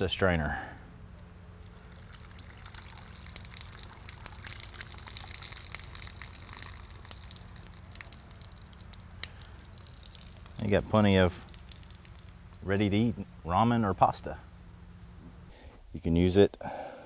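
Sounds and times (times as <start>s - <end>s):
water trickling through cloth: 1.6s - 14.0s.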